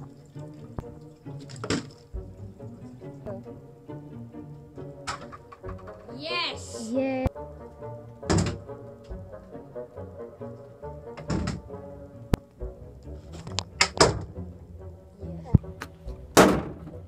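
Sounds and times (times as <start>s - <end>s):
background music: 0.0s - 17.0s
plastic bottles landing on wooden shelf: 1.4s - 2.0s, 16.3s - 17.0s
excited shouts: 6.1s - 7.1s.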